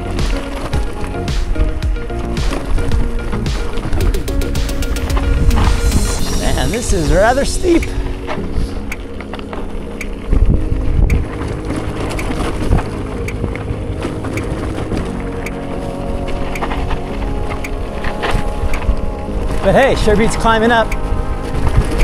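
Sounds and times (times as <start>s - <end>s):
bike rattling over rocks: 0.0s - 5.7s, 9.2s - 18.5s
wind buffeting microphone: 9.6s - 22.0s.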